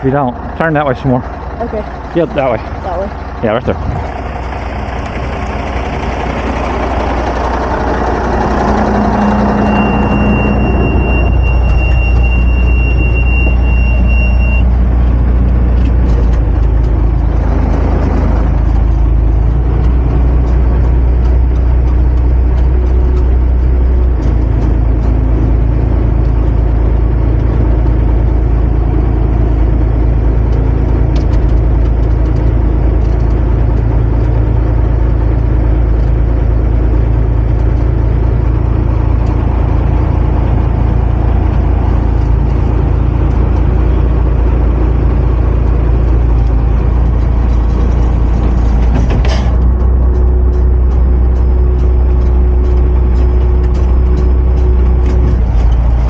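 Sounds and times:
diesel truck engine drone: 0.0s - 56.0s
thin high whistle: 9.6s - 14.7s.

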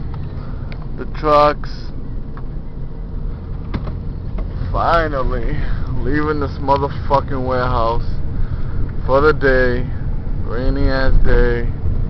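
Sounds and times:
tyres on wet road: 0.0s - 10.7s
car engine rumble: 0.0s - 12.0s.

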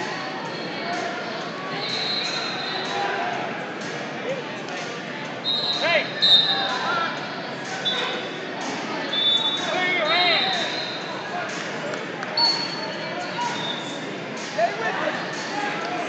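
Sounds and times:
voices echoing in a hall: 0.0s - 16.0s.

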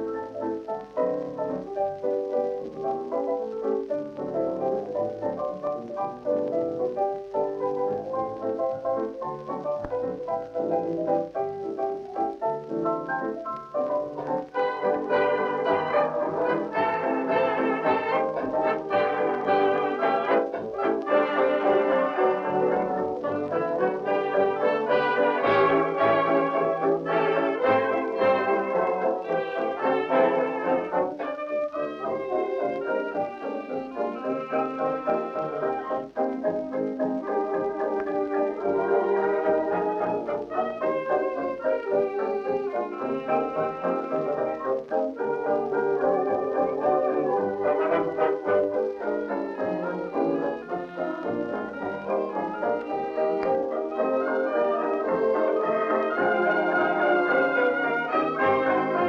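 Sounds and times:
dance band with brass: 0.0s - 59.0s.

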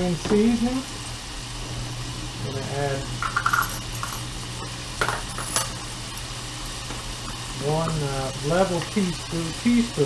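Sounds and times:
steady low hum: 0.0s - 10.0s
metal spoons clinking: 3.2s - 4.3s, 5.0s - 5.8s.

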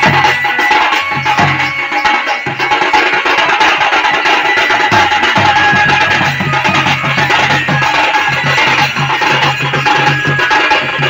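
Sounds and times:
barrel drum beaten with stick: 0.0s - 11.0s
folk music with percussion: 0.0s - 11.0s.

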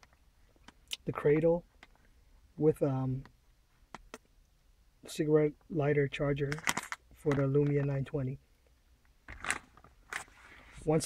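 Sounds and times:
plastic bags crinkling: 9.3s - 10.3s.

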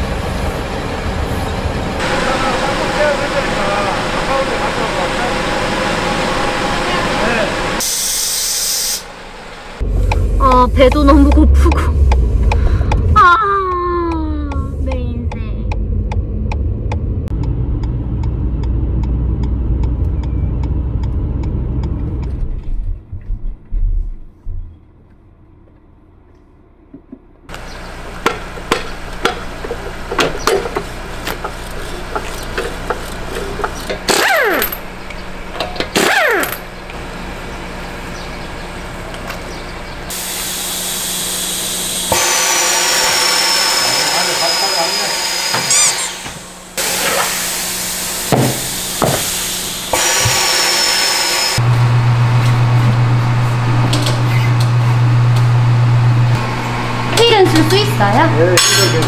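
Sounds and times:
steady machine noise: 0.0s - 23.6s, 27.5s - 59.0s
road rumble inside car: 9.8s - 34.1s
power tool whirring: 30.4s - 34.9s, 35.8s - 36.6s, 40.1s - 55.5s.

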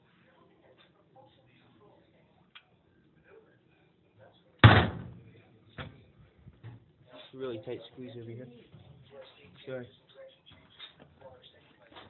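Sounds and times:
loud bang: 4.6s - 5.2s.

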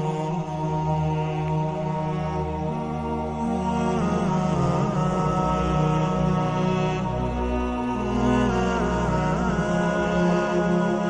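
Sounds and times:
slow chant with held notes: 0.0s - 11.0s.

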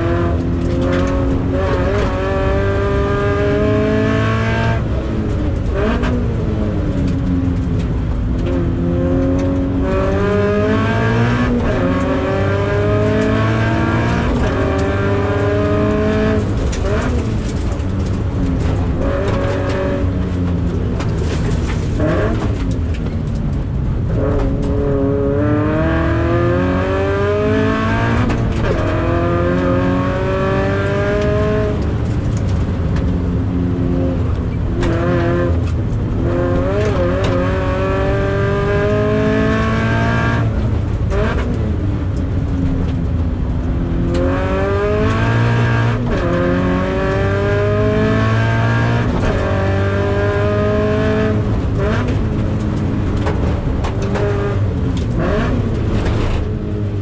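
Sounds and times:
car engine accelerating hard: 0.0s - 57.0s.

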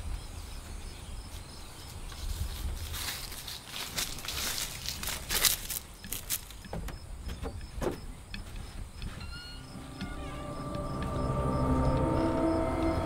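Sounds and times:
footsteps on wooden steps: 0.0s - 12.5s
low horror score drone: 9.4s - 13.0s.

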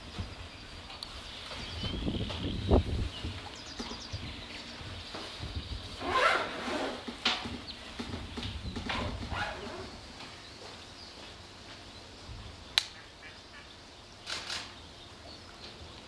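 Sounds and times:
birds calling: 0.0s - 16.0s.

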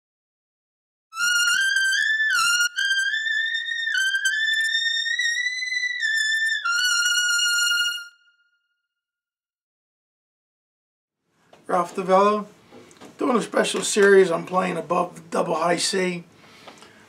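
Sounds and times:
solo trumpet high run: 1.2s - 8.8s.

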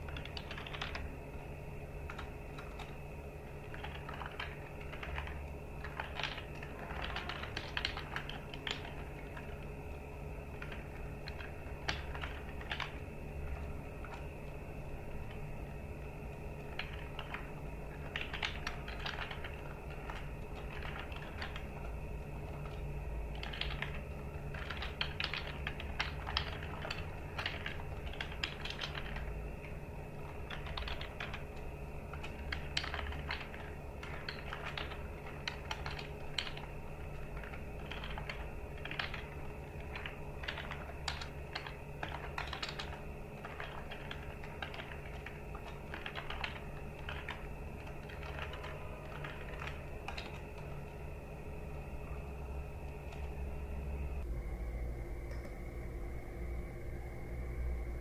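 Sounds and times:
computer keyboard typing: 0.0s - 53.4s
low hum: 0.0s - 58.0s.

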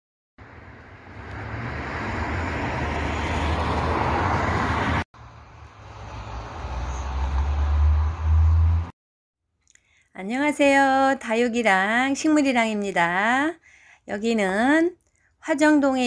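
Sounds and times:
road traffic rushing and rumble: 0.4s - 9.0s.

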